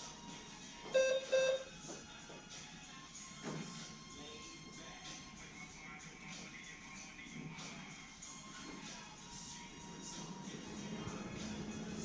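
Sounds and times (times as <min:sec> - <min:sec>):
quiet background music: 0:00.0 - 0:12.0
short electronic beeps: 0:01.0 - 0:01.7.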